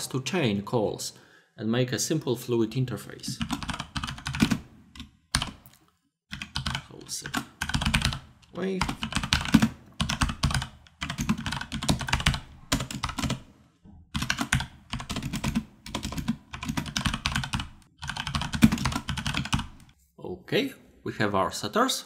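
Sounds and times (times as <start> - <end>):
fast keyboard typing: 3.3 - 5.7, 6.3 - 13.5, 14.1 - 19.9.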